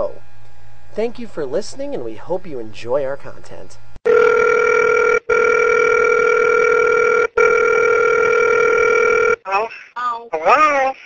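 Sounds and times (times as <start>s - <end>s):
telephone line tone: 4.1s - 9.4s.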